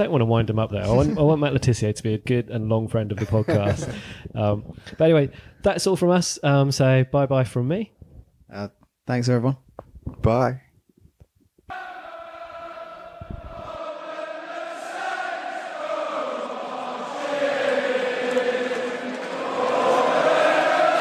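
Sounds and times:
voices chanting in unison: 11.7s - 21.0s.

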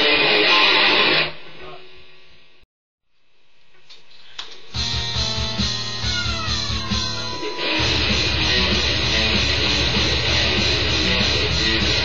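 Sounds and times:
distorted electric guitar riff: 0.0s - 1.6s, 4.8s - 12.0s.

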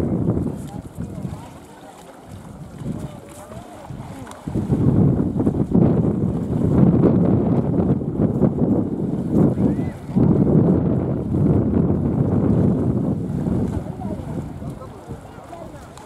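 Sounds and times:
distant crowd voices: 0.0s - 4.8s, 13.2s - 16.0s
wind buffeting microphone: 0.0s - 16.0s.

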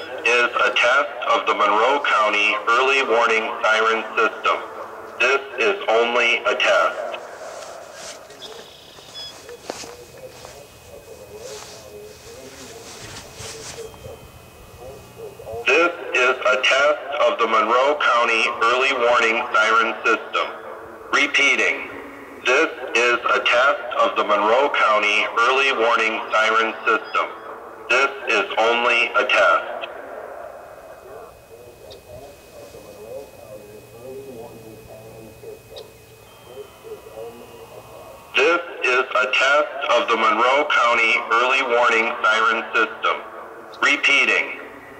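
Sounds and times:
thin steady high tone: 0.0s - 17.8s, 26.5s - 44.9s
distant siren voice announcement: 0.0s - 44.9s
siren driver hiss: 6.6s - 16.0s, 30.6s - 39.6s.

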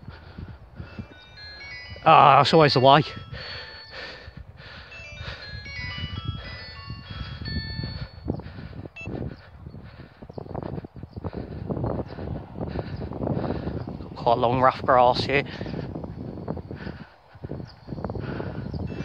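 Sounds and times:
wind on microphone: 0.0s - 19.0s
chiming tune: 0.8s - 9.2s.

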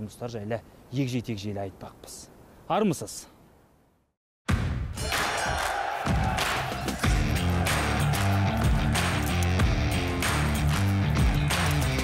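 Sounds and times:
energetic sports theme music: 4.9s - 12.0s
crowd cheering: 5.0s - 12.0s.

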